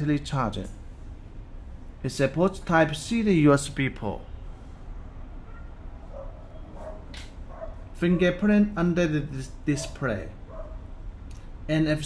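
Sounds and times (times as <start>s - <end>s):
low steady hum: 0.0s - 12.0s
dog barking in the distance: 5.5s - 8.4s, 9.7s - 10.8s.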